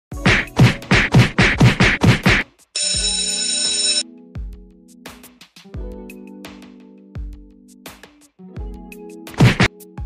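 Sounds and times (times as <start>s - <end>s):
quick rhythmic thumps: 0.2s - 2.4s, 9.4s - 9.7s
buzzy phone ringtone: 2.8s - 4.1s.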